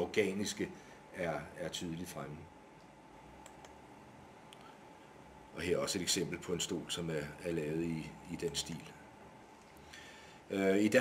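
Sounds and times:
soft clicks: 0:02.8 - 0:03.8.

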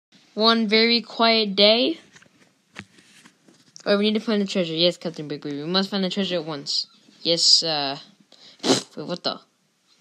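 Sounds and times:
person speaking: 0:00.3 - 0:09.6
faint rustling: 0:01.9 - 0:07.4.

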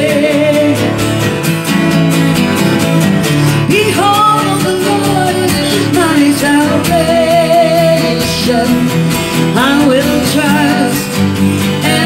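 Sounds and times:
person singing with vibrato: 0:00.0 - 0:01.5, 0:02.2 - 0:12.0
acoustic guitars strumming: 0:00.0 - 0:12.0.

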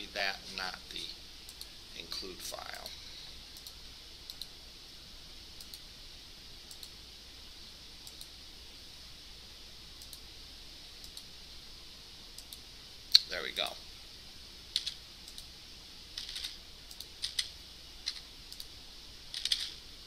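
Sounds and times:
keyboard keystrokes: 0:19.3 - 0:19.7.

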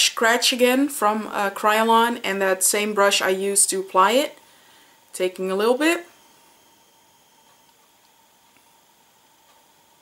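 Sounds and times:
room tone hiss: 0:00.0 - 0:10.0
faint high steady tone: 0:04.2 - 0:10.0.

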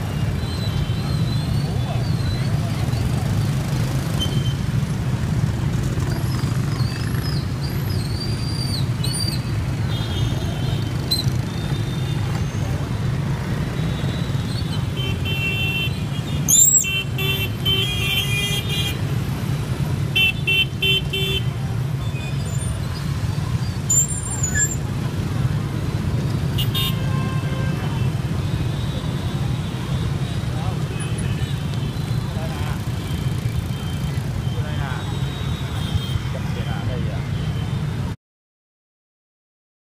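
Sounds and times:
motorbike and car traffic: 0:00.0 - 0:38.2
vehicle horns beeping: 0:26.6 - 0:30.4.

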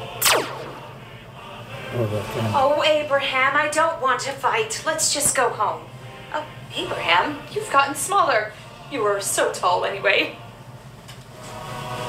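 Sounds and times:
zap sweeping down in pitch: 0:00.2 - 0:01.0.

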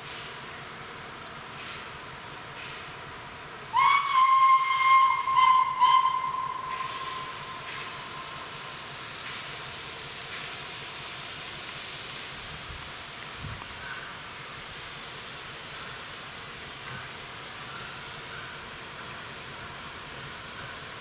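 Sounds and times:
steam locomotive whistle blasts: 0:03.7 - 0:08.8.

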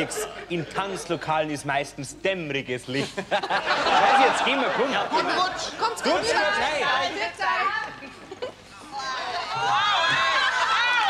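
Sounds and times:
people talking over one another: 0:04.0 - 0:08.0.

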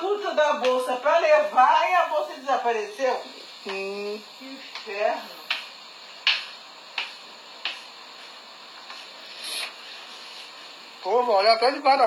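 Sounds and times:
sandal footsteps on tile floor: 0:06.3 - 0:10.6.

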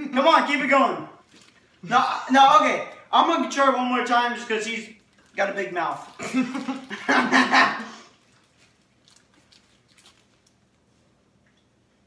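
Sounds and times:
young man laughing loudly: 0:06.2 - 0:07.9.

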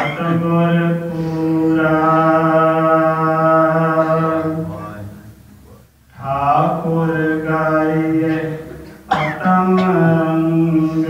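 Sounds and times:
man chanting scripture: 0:00.0 - 0:11.0.

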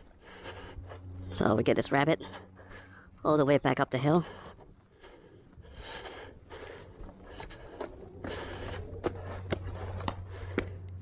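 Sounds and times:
footsteps on dirt and wooden steps: 0:00.0 - 0:11.0
low steady hum: 0:00.0 - 0:11.0.

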